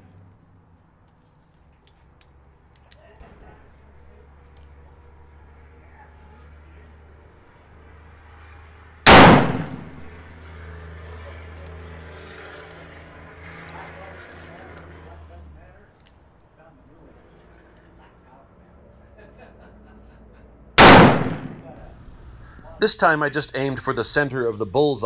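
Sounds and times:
revolver gunshot: 9.1 - 10.1, 20.8 - 22.0.

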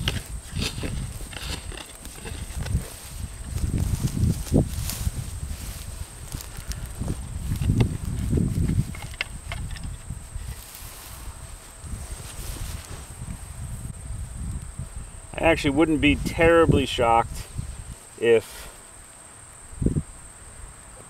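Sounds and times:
hands scraping through soil: 0.0 - 9.3, 10.3 - 13.2.

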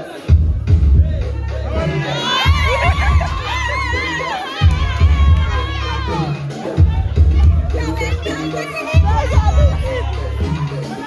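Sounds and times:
crowd cheering and shouting: 0.0 - 11.0
dance music with heavy bass beat: 0.0 - 11.0.

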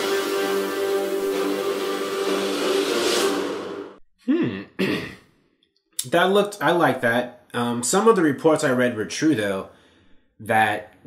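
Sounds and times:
held chord of trailer music: 0.0 - 4.0.

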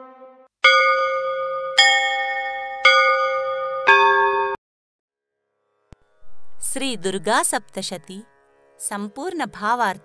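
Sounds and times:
bells ringing: 0.6 - 4.6.

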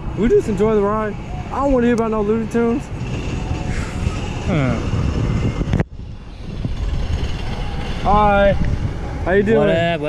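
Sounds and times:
wind rumble on microphone: 2.7 - 10.0.

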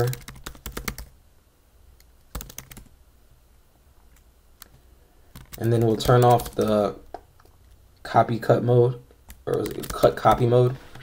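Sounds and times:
typing on computer keyboard: 0.0 - 1.1, 2.3 - 2.9, 5.3 - 6.8, 9.3 - 10.4.

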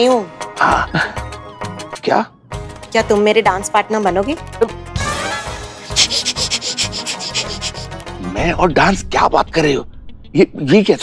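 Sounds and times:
fast shaker-like rattle: 5.8 - 7.9.

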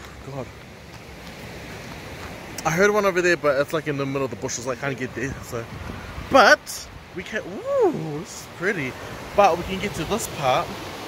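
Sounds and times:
stream water rushing: 0.0 - 11.0.

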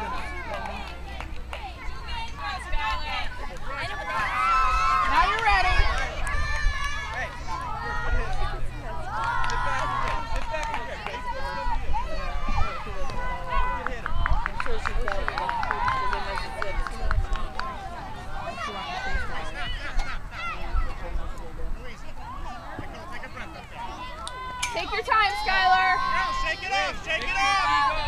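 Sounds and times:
people clapping quickly: 0.0 - 1.7, 5.1 - 7.4, 9.1 - 11.5, 13.0 - 17.8
people shouting and cheering: 0.0 - 28.0.

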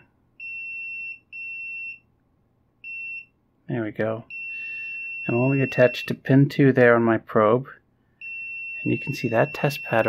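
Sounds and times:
multimeter beeps: 4.3 - 6.2, 8.2 - 10.0.

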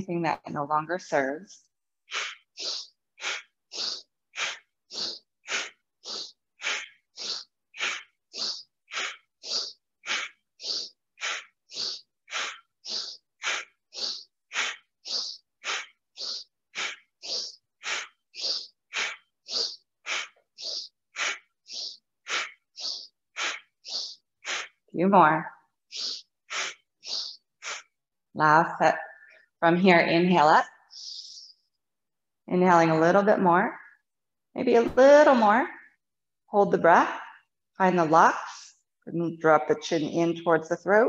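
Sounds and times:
woman breathing rapidly: 2.1 - 24.8, 25.9 - 28.0, 30.7 - 31.7.

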